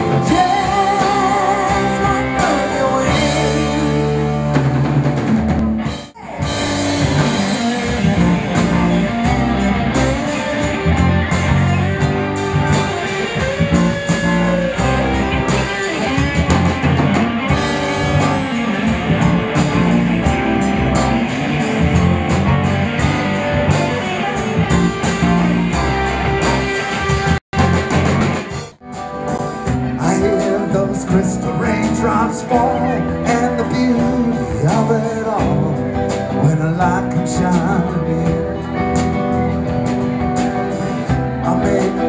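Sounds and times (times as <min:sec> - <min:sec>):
bass: 0:00.0 - 0:42.0
drum kit: 0:00.0 - 0:42.0
electric guitar: 0:00.0 - 0:42.0
keyboards: 0:00.0 - 0:42.0.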